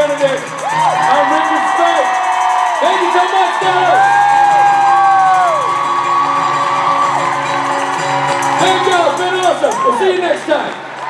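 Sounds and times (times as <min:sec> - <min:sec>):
audience cheering and whooping: 0:00.0 - 0:11.0.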